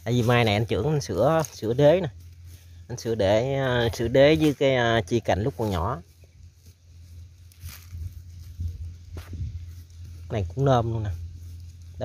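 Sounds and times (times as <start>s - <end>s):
hand scraping soil and leaves: 0.0s - 12.0s
low steady hum: 0.0s - 12.0s.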